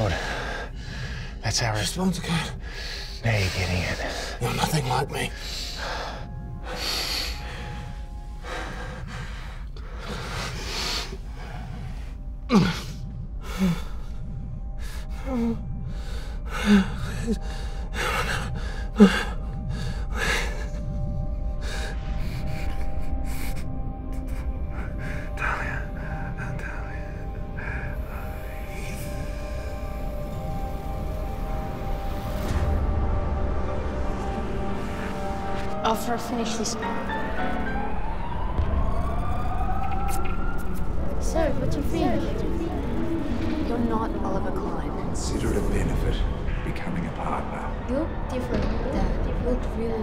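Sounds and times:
deep low rumble: 0.0s - 50.0s
tense background music: 0.0s - 50.0s.

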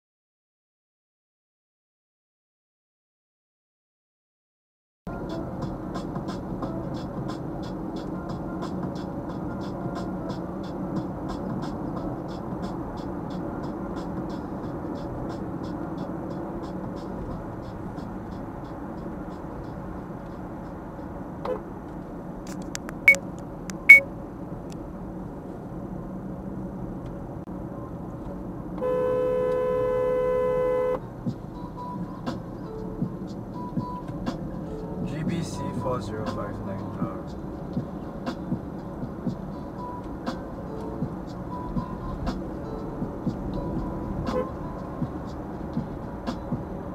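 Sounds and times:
road and tyre noise in car: 5.1s - 46.9s
sharp clicks: 22.5s - 24.0s
car horn: 28.8s - 31.0s, 44.2s - 44.8s.

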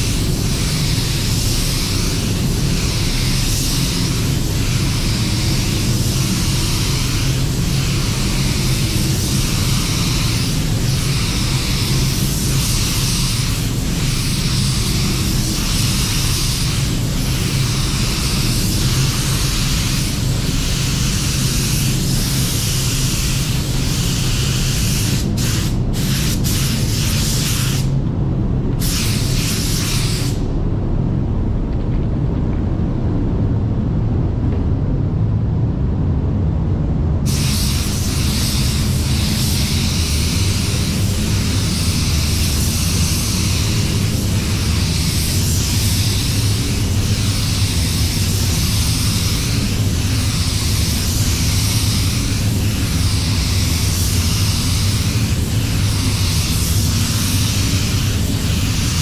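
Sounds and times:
spray gun hissing: 0.0s - 28.0s, 28.8s - 30.5s, 37.3s - 59.0s
low rumble: 27.9s - 59.0s.

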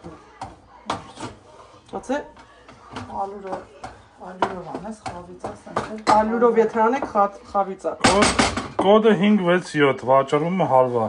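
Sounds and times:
voices talking quietly: 0.0s - 8.4s.

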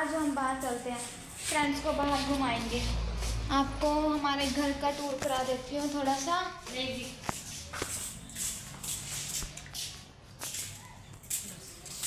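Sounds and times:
shuffling footsteps: 0.0s - 12.0s.

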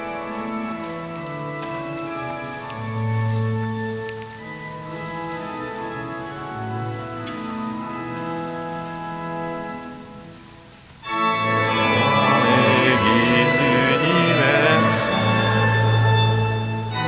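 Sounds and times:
pipe organ playing hymn chords: 0.0s - 17.0s.

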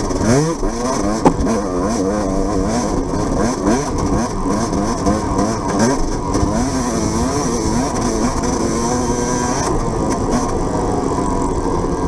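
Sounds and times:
dirt bike engine revving: 0.0s - 11.2s
sharp knock: 1.2s - 1.5s.

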